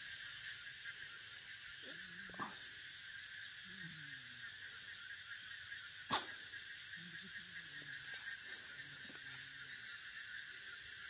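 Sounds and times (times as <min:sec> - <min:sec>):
high insect chirp: 0:00.0 - 0:11.0
night insects chorus: 0:00.0 - 0:11.0.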